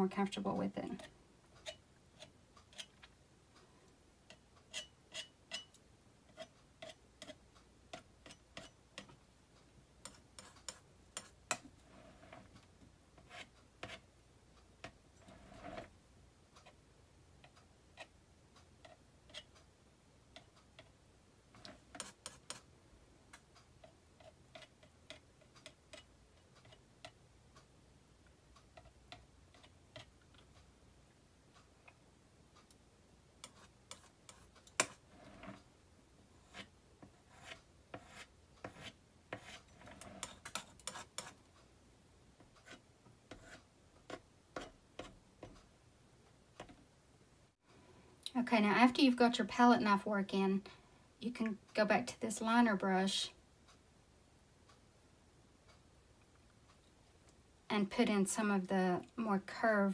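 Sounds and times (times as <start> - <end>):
palette knife scrape: 10.0 - 12.5, 15.2 - 15.9, 21.6 - 22.7, 33.4 - 35.6, 36.4 - 41.4, 42.6 - 45.2.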